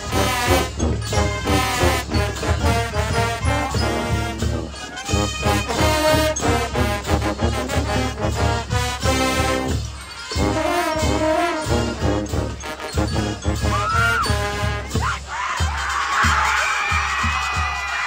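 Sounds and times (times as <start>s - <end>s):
marching band brass playing: 0.0s - 18.0s.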